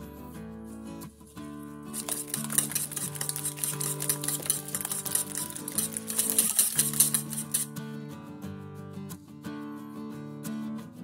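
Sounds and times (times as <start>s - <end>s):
whisk beating eggs in a bowl: 1.9s - 7.7s.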